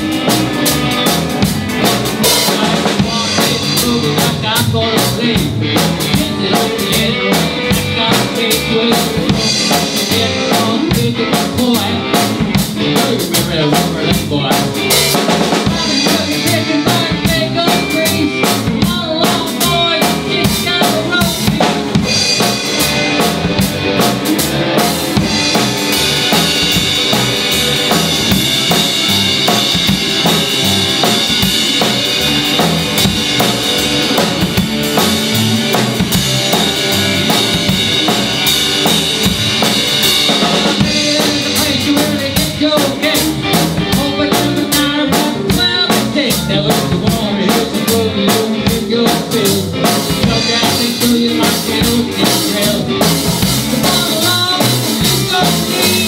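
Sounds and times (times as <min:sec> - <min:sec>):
drum kit steady beat: 0:00.0 - 0:56.0
electric guitars: 0:00.0 - 0:56.0.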